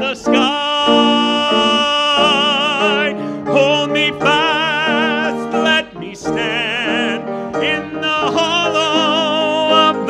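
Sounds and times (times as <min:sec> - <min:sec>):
song leader singing into microphone: 0:00.0 - 0:10.0.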